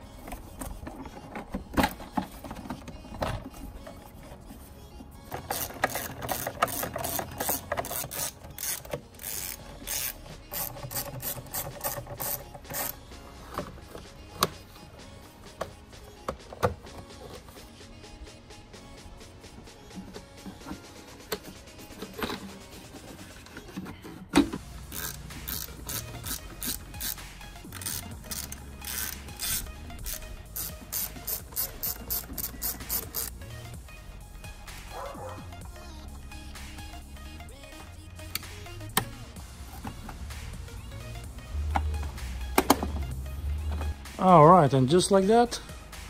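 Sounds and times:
screwdriver ratchet clicking: 5.4s - 13.0s, 24.8s - 33.4s.

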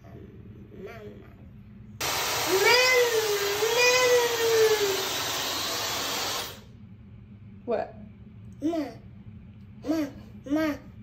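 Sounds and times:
hair dryer blowing: 2.0s - 6.7s
high voice drawn-out sound: 2.5s - 5.0s.

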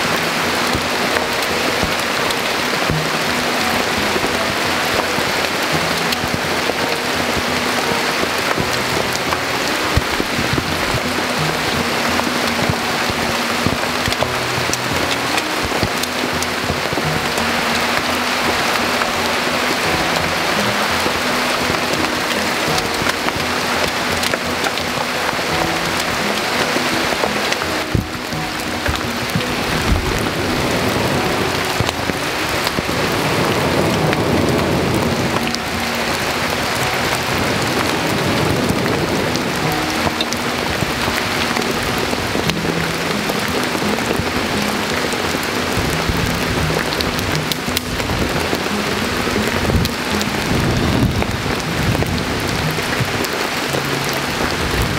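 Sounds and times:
campfire crackling: 0.0s - 54.9s
soft background music: 0.0s - 54.9s.

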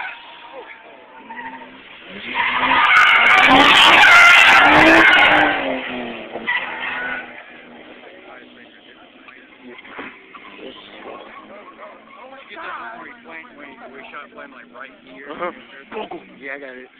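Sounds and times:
car tyres squealing on pavement: 0.0s - 16.9s.

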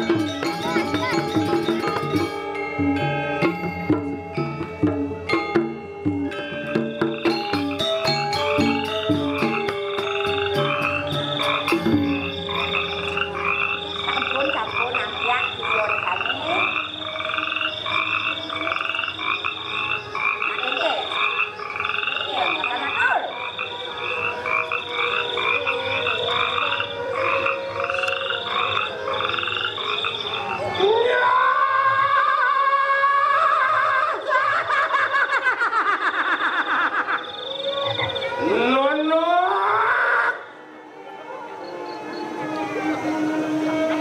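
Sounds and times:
gamelan music: 0.0s - 31.0s, 40.5s - 44.0s
frogs croaking: 6.3s - 44.0s.

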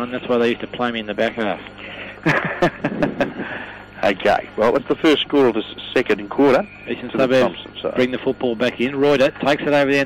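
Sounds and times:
men laughing: 1.8s - 4.1s.

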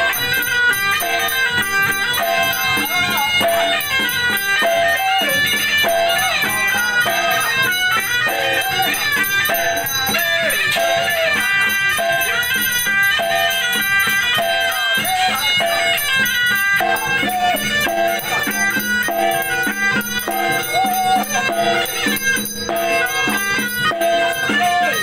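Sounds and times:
hand drum beating: 0.0s - 25.0s
nasal double-reed shawm melody: 0.0s - 25.0s
percussion beating: 0.0s - 25.0s.

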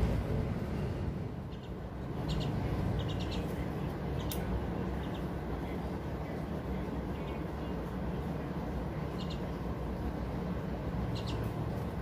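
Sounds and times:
steady low rumble: 0.0s - 12.0s
bird chirping: 1.4s - 5.8s, 9.0s - 9.6s, 11.0s - 11.5s.

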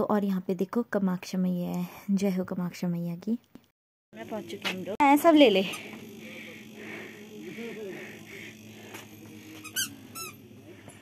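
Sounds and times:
high-pitched squeaks: 9.5s - 10.4s.

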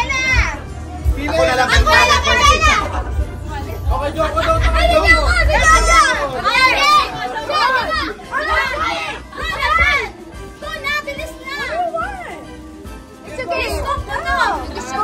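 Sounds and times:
children and adults shouting: 0.0s - 0.6s, 1.3s - 3.2s, 4.2s - 12.3s
music playing: 0.0s - 15.0s.

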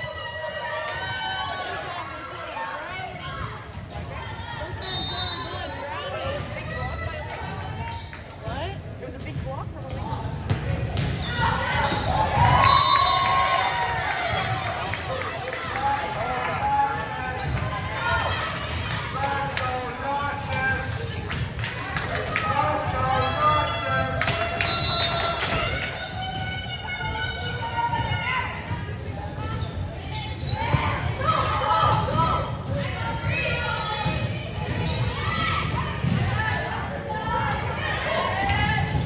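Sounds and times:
shoe squeaks: 4.0s - 6.4s, 7.8s - 9.5s, 10.5s - 13.2s, 28.7s - 31.0s, 37.2s - 38.3s.

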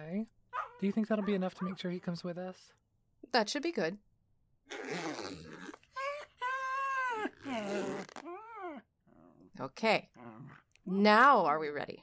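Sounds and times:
jacket rustling zipped up: 4.7s - 6.0s, 7.4s - 8.4s
small dog whining: 6.0s - 9.4s.

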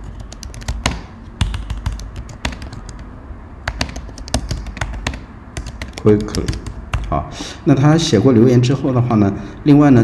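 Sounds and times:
computer keyboard key clicks: 0.0s - 3.0s, 3.7s - 7.1s.

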